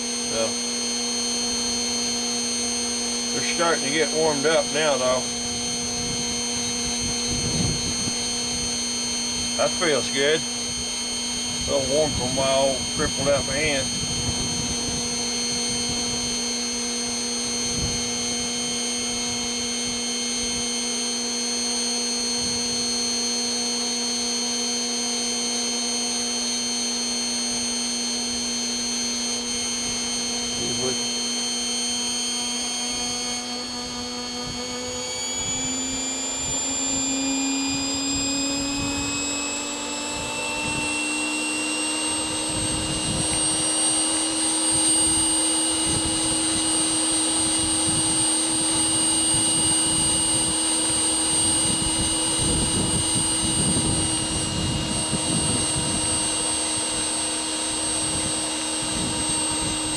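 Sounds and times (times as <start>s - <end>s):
small electric motor humming: 0.0s - 59.9s.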